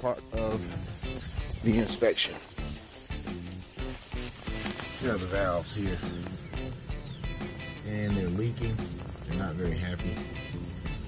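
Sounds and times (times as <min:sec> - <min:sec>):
background music with beat: 0:00.0 - 0:11.0.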